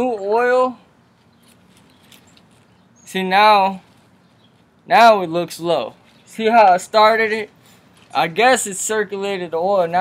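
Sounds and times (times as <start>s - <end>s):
faint clicks and rustles: 1.0s - 2.9s, 3.7s - 4.9s, 5.8s - 6.4s, 7.3s - 8.5s.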